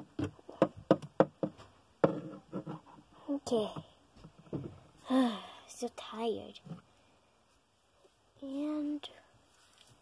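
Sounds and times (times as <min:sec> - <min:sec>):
plastic doll tapping on hard surface: 0:00.2 - 0:02.3.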